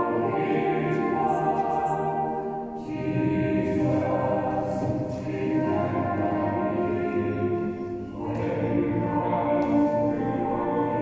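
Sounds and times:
church choir singing: 0.0 - 11.0.

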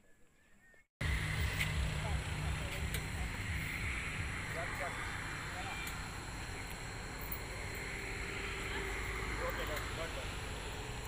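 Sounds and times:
faint distant voices: 0.0 - 11.0
low rumble: 1.0 - 11.0.

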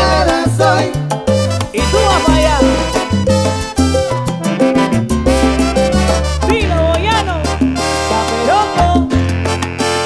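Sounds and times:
bass line: 0.0 - 10.0
salsa band playing: 0.0 - 10.0.

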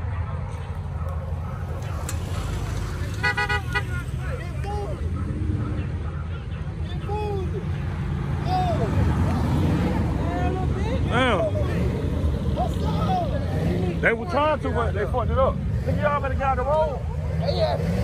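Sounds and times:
car engines rumbling: 0.0 - 18.0
car horn short blasts: 3.2 - 3.9.

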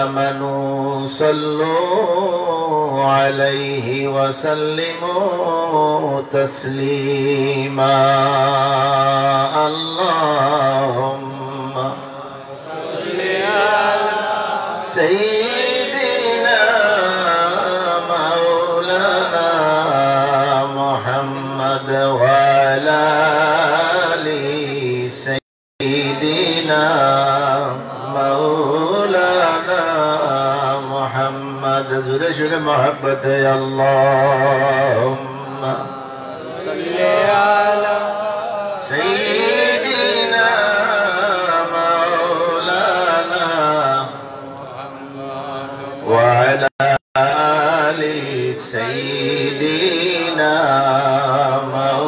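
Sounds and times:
man chanting: 0.0 - 52.0.

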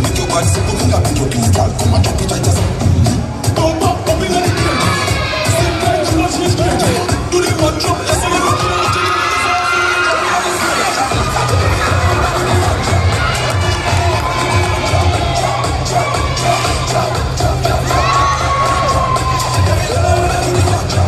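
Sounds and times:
reggae dance music over loudspeakers: 0.0 - 21.0
children shouting: 4.2 - 7.1, 8.0 - 20.9
audience cheering: 8.0 - 20.6.

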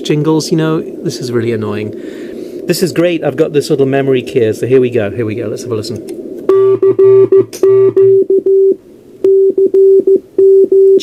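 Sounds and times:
speaker buzzing: 6.0 - 11.0
morse code tone: 6.5 - 11.0.

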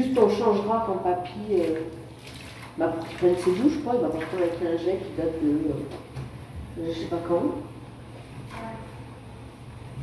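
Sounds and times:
people talking: 0.0 - 1.9, 2.8 - 6.0, 6.8 - 7.7.

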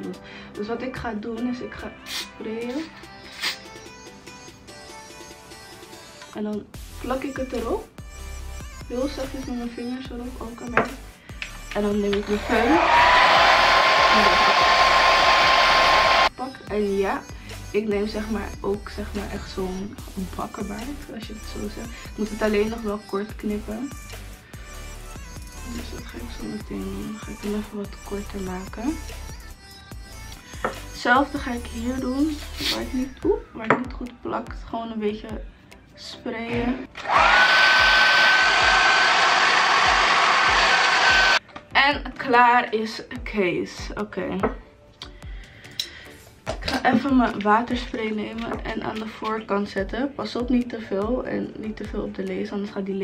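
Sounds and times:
hair dryer running: 12.3 - 16.3, 37.0 - 41.4.

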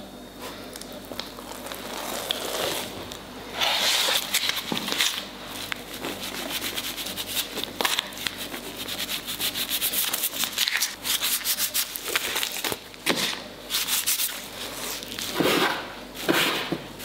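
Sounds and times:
hands kneading sticky dough: 0.5 - 15.6.

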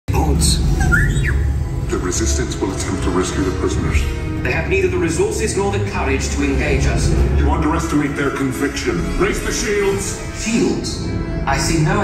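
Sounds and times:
chirping squawk-like pitch glides: 0.5 - 1.7
deep steady rumble: 3.7 - 8.4.

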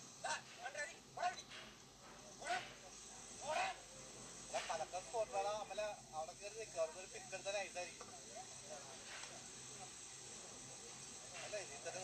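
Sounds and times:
steady high hiss: 0.0 - 12.0
people chattering: 6.4 - 12.0.

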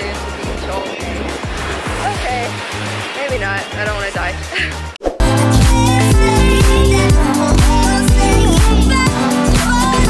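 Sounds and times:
surf washing: 0.0 - 5.0
pop music with bass beat: 0.0 - 10.0.

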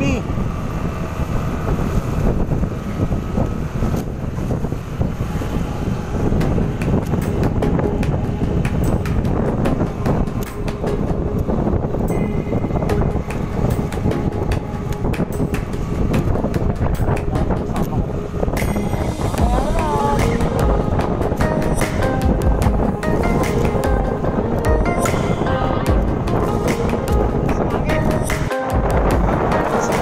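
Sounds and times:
vehicle rumble: 0.0 - 30.0
wind buffeting microphone: 0.0 - 30.0.

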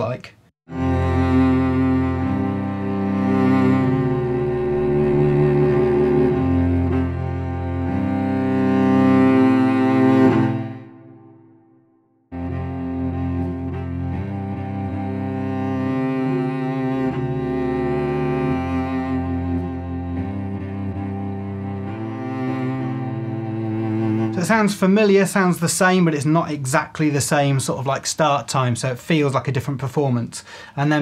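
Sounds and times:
slow bowed cello melody: 0.7 - 11.7, 12.3 - 25.0.

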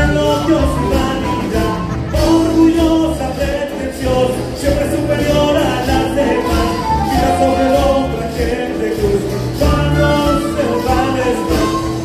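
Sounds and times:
band playing dance music: 0.0 - 12.0.

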